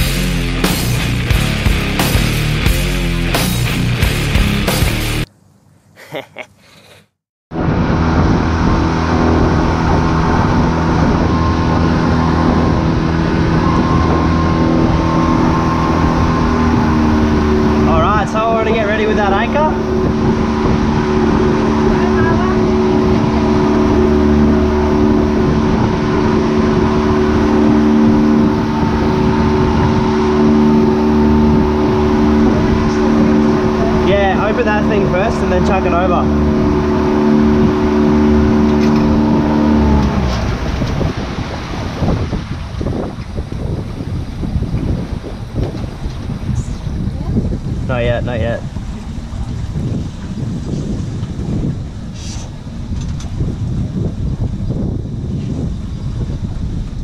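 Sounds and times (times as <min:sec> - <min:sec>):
outboard motor running: 0:00.0 - 0:05.2, 0:07.5 - 0:57.0.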